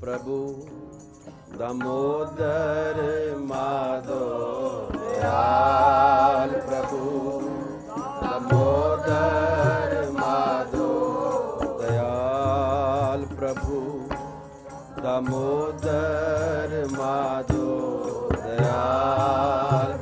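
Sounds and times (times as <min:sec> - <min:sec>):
harmonium: 0:00.0 - 0:20.0
tabla strokes: 0:00.1 - 0:20.0.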